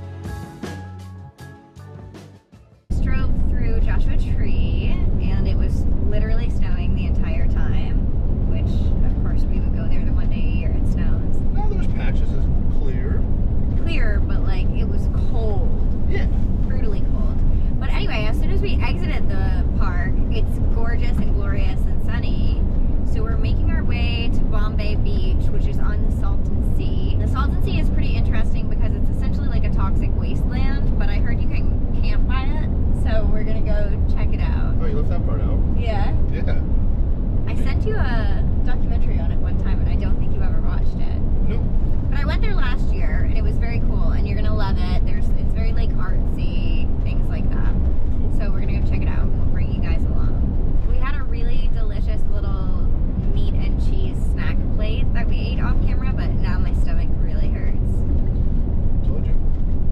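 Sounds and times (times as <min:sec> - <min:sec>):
engine and road noise: 0:02.8 - 0:59.9
woman talking: 0:02.9 - 0:11.4, 0:13.8 - 0:34.8, 0:35.8 - 0:36.2, 0:37.4 - 0:58.0.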